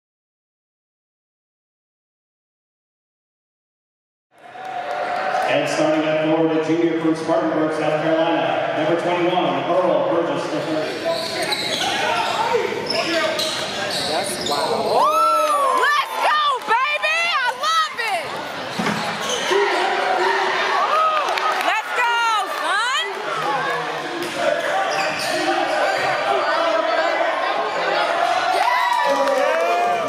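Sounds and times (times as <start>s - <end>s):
voices echoing in gym: 4.6s - 30.0s
sneakers squeaking: 10.5s - 15.3s, 16.8s - 20.1s, 24.2s - 26.5s.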